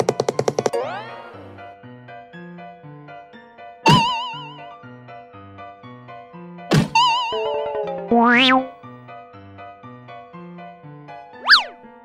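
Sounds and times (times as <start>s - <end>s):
cartoon downward swoop: 7.0s - 8.7s, 11.4s - 11.8s
cheerful children's music: 7.0s - 8.8s
warbling tone: 8.1s - 8.7s
quick up-and-down zip: 11.4s - 11.7s.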